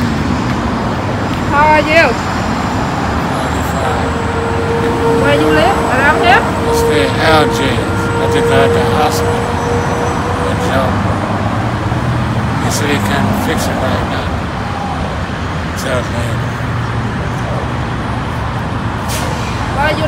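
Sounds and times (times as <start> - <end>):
road traffic noise: 0.0 - 20.0
man talking: 3.2 - 5.5, 6.7 - 9.6, 10.4 - 11.3, 12.6 - 14.4, 15.8 - 17.8.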